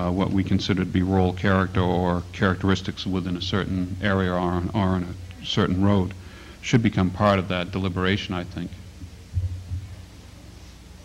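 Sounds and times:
faint steady hum: 0:00.0 - 0:11.0
dull low thumps: 0:09.0 - 0:10.1.

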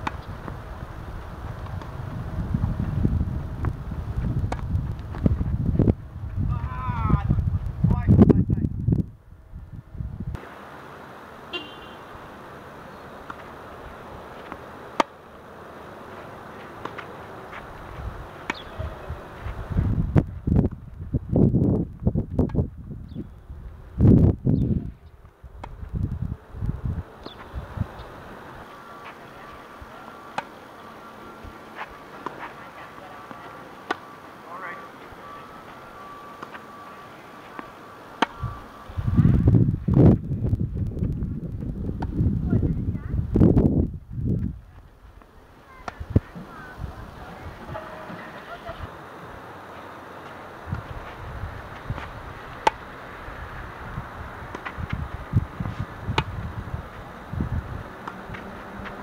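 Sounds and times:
tennis racquet hitting ball: 0:00.0 - 0:00.6, 0:14.4 - 0:15.2, 0:16.6 - 0:17.7, 0:18.4 - 0:19.0, 0:29.0 - 0:30.6, 0:31.7 - 0:34.2, 0:37.4 - 0:38.4, 0:51.8 - 0:52.9, 0:54.5 - 0:54.9, 0:58.0 - 0:59.0
wind rumbling on microphone: 0:00.0 - 0:10.4, 0:17.6 - 0:28.7, 0:38.4 - 0:47.8, 0:50.6 - 0:59.0
outdoor background hiss: 0:00.0 - 0:59.0
thin high steady tone: 0:27.9 - 0:39.2.

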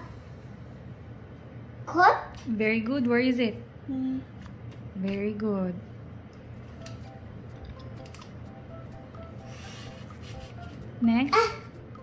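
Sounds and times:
pencil scratching on paper: 0:09.5 - 0:10.7.

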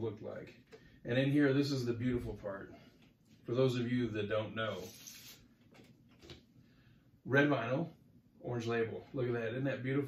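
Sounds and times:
soft brushing strokes: 0:02.3 - 0:05.6
vinyl record sliding from paper sleeve: 0:04.7 - 0:05.5.

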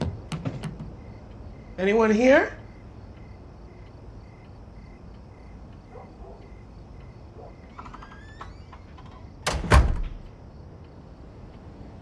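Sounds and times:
cricket chirping: 0:00.0 - 0:12.0
faint creak: 0:07.6 - 0:09.4.

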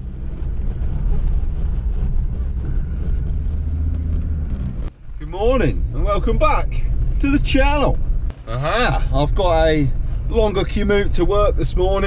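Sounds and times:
engine and road rumble in cab: 0:00.0 - 0:12.0.

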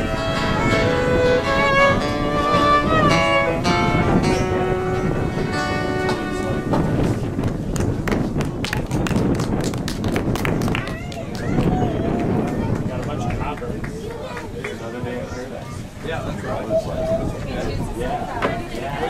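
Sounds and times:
acoustic guitar: 0:00.0 - 0:07.7
fiddle playing folk music: 0:00.0 - 0:07.8
audience clapping: 0:07.4 - 0:14.9.

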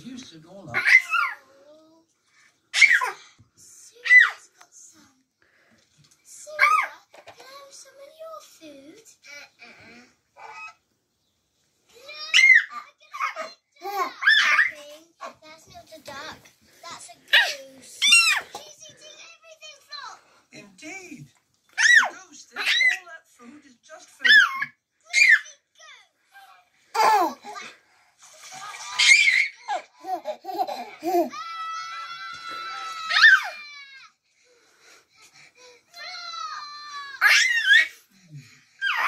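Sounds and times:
toddler laughing and squealing: 0:12.2 - 0:14.7, 0:24.2 - 0:25.4, 0:28.7 - 0:34.0, 0:36.0 - 0:38.0.

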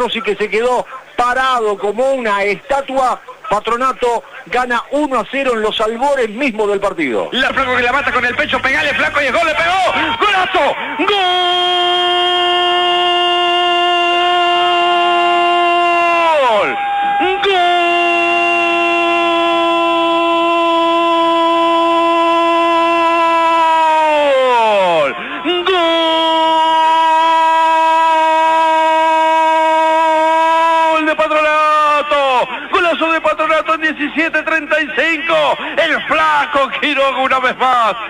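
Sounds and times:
man shouting long held cry: 0:09.3 - 0:33.0.

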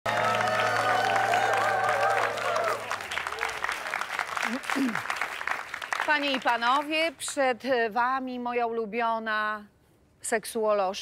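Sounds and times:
audience applauding: 0:00.0 - 0:07.1
live band holding a chord: 0:00.1 - 0:02.9.

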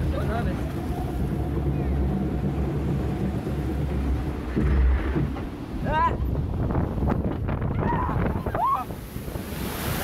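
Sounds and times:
water slide rushing rumble: 0:00.0 - 0:10.0
wind buffeting microphone: 0:00.0 - 0:10.0.

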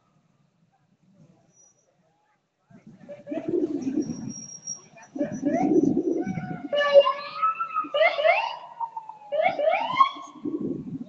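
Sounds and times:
emergency vehicle siren: 0:05.2 - 0:10.9.

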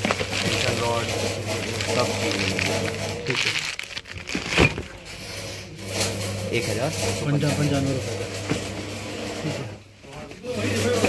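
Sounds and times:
plastic bag crinkling: 0:00.0 - 0:05.1.

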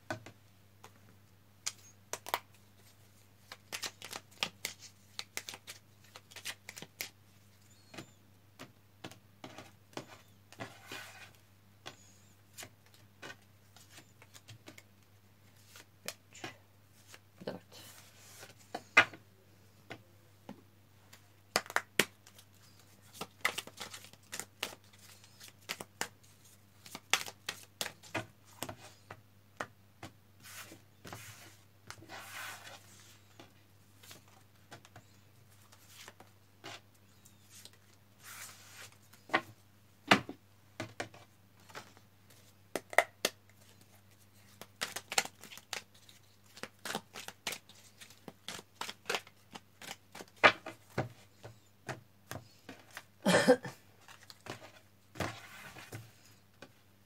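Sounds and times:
cards shuffling snaps: 0:03.5 - 0:07.1, 0:21.5 - 0:22.4, 0:23.2 - 0:26.1, 0:26.8 - 0:27.9.

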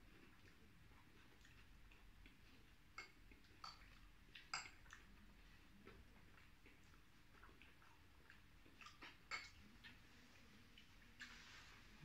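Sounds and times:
faint eating clicks: 0:00.0 - 0:11.4.

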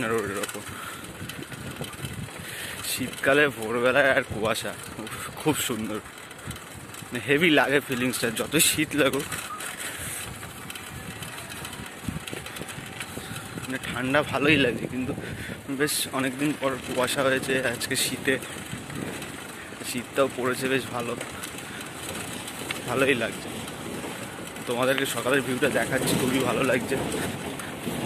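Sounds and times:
rattles and clicks of road traffic: 0:00.0 - 0:28.0.

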